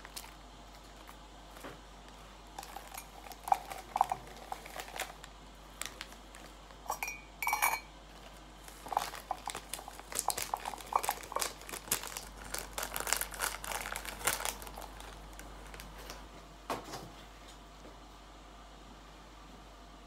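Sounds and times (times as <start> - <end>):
paper sachet crinkling: 0.0 - 6.9, 8.1 - 16.2
metal spoon clinking against mug: 6.9 - 7.9.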